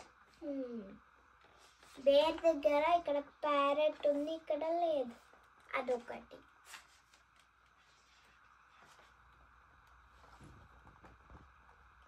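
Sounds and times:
child's voice: 0:00.4 - 0:01.0, 0:01.9 - 0:06.5.

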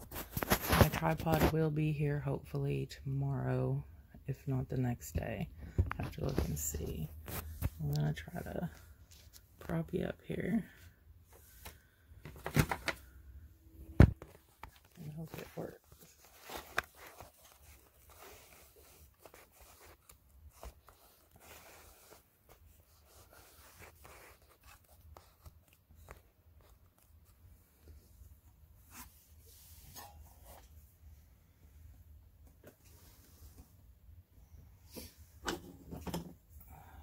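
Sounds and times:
hands handling craft items: 0:00.0 - 0:01.6, 0:05.6 - 0:30.8.

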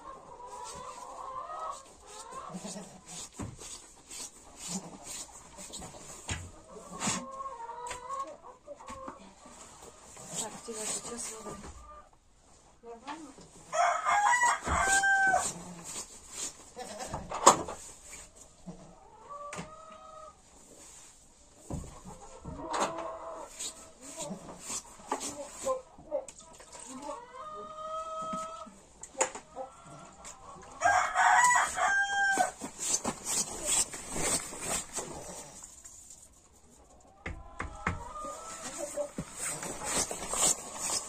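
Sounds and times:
rooster crowing: 0:13.8 - 0:15.4, 0:30.8 - 0:32.6.

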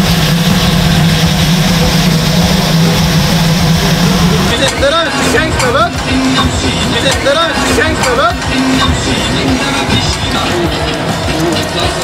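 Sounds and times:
low mechanical hum: 0:00.0 - 0:12.0
voices: 0:01.8 - 0:12.0.

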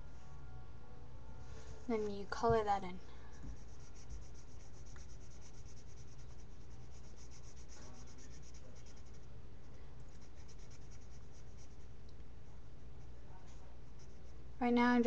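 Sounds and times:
marker scribbling on paper: 0:03.4 - 0:09.3, 0:10.1 - 0:11.8.

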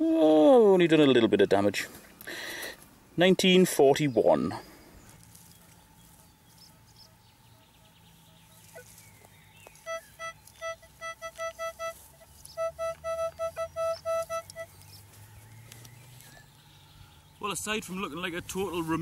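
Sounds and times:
metal detector beeps: 0:09.8 - 0:15.0.

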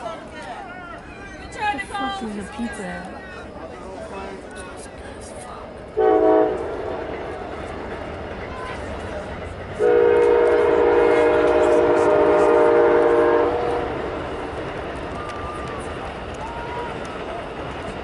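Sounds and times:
train horn blasts: 0:06.0 - 0:07.3, 0:09.8 - 0:14.0.

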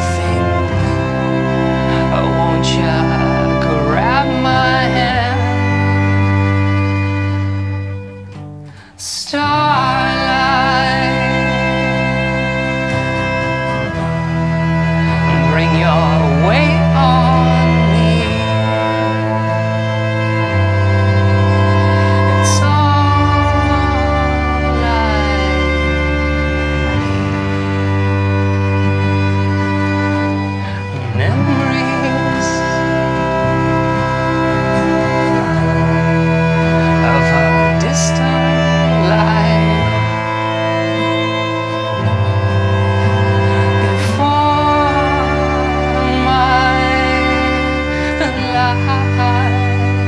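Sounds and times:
cello bowing sustained chords: 0:00.0 - 0:50.0
violin bowing sustained chords: 0:00.0 - 0:50.0.

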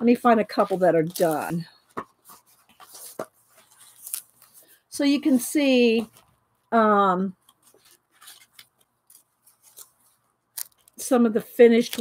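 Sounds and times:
paper pages rustling: 0:00.5 - 0:05.4, 0:07.4 - 0:12.0.

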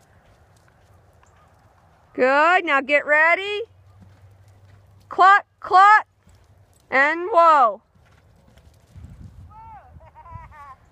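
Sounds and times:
horse hoofbeats on dirt: 0:00.0 - 0:09.5.

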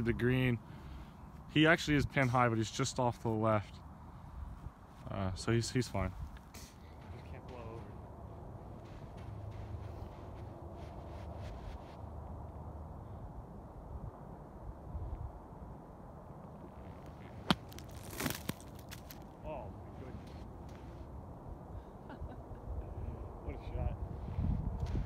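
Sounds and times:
steady low rumble: 0:03.8 - 0:25.0
golf club striking sand: 0:17.2 - 0:19.2.

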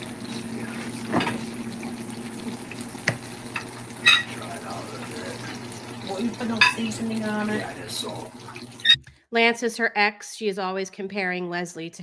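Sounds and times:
burgers sizzling in a skillet: 0:00.0 - 0:08.9.

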